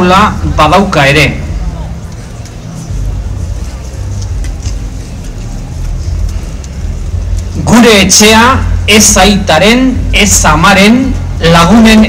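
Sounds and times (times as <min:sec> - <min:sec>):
man's amplified voice: 0:00.0 - 0:01.6, 0:07.5 - 0:12.0
low outdoor rumble: 0:00.0 - 0:12.0.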